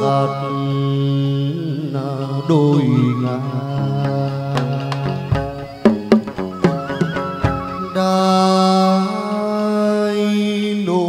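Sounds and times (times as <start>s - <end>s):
person singing a long note: 0.0s - 11.0s.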